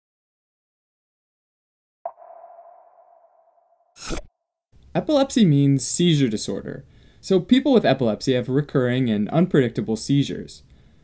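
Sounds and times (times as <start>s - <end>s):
electronic ping: 2.1s - 4.3s.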